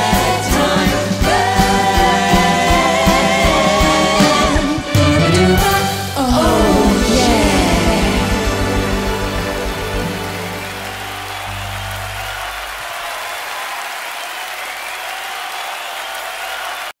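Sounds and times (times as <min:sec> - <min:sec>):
live band closing chord: 0:04.5 - 0:13.2
audience applause: 0:06.2 - 0:17.0.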